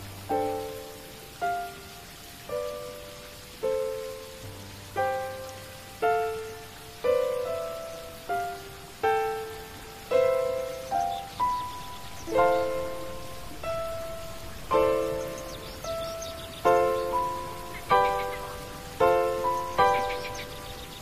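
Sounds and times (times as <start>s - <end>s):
rain falling: 0.0s - 21.0s
slow keyboard melody: 0.0s - 21.0s.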